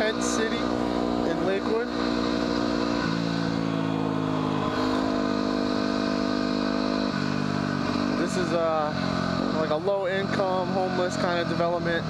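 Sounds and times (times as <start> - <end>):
motorcycle engine riding along: 0.0 - 12.0.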